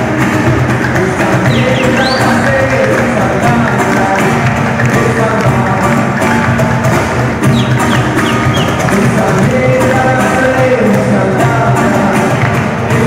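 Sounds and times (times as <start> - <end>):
live band playing: 0.0 - 13.0
percussion: 0.0 - 13.0.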